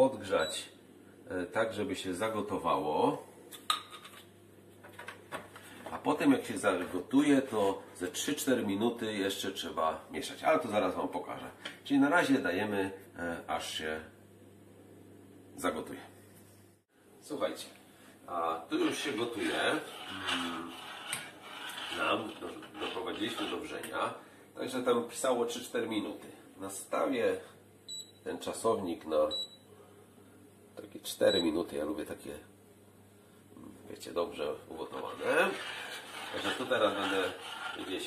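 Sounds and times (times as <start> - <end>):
metal spoon scraping a saucepan: 19.2 - 23.7, 34.9 - 38.0
oats boiling in milk: 34.9 - 38.0.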